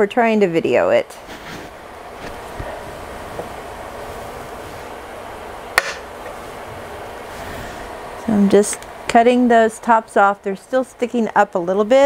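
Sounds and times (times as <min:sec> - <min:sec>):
steady background noise: 0:00.0 - 0:12.0.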